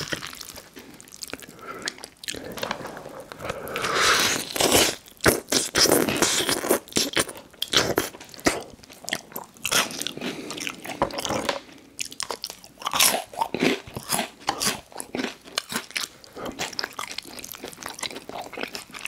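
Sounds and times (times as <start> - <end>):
chewing crunchy food: 0.0 - 19.0.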